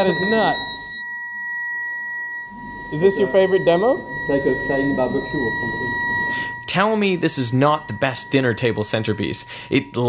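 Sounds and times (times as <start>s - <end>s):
high-pitched electrical whine: 0.0s - 10.0s.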